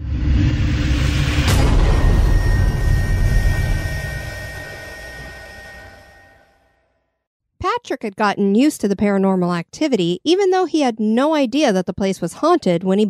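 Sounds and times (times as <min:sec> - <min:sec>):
deep noisy swell: 0:00.0 - 0:06.7
sharp hit: 0:00.0 - 0:06.9
ringing tones: 0:01.6 - 0:06.8.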